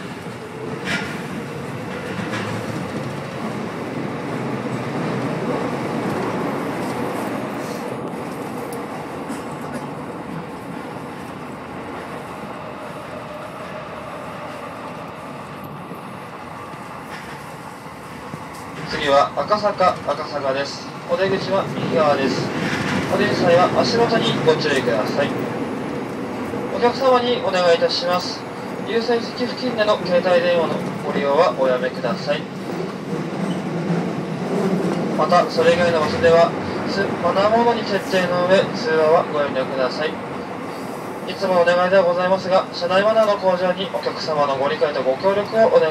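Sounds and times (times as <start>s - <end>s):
onboard station announcement: 0.0s - 45.9s
subway train rumbling in tunnel: 0.0s - 45.9s.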